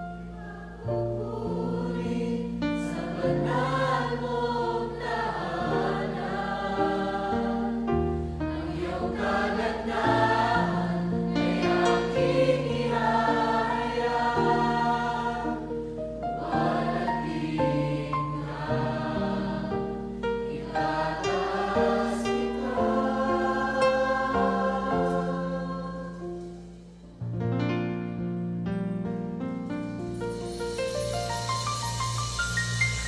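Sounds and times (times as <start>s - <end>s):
instrumental accompaniment: 0.0s - 33.0s
voices singing in chorus: 0.3s - 7.9s, 8.5s - 26.4s.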